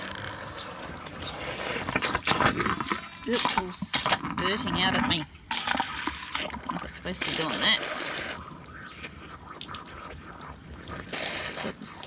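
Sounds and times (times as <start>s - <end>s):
water from hose running into tank: 0.0s - 12.0s.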